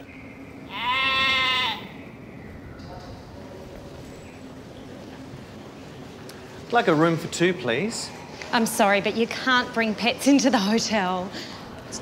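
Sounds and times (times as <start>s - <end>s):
sheep bleating: 0.7s - 2.0s.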